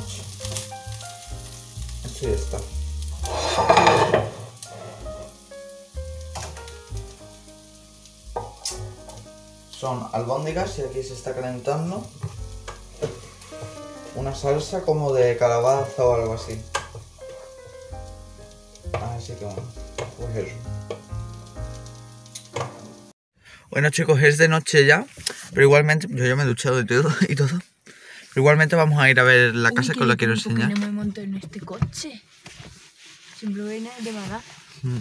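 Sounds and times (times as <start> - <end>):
soft background melody: 0.0 - 23.1
food sizzling in a frying pan: 0.0 - 23.2, 27.0 - 31.0, 32.8 - 35.0.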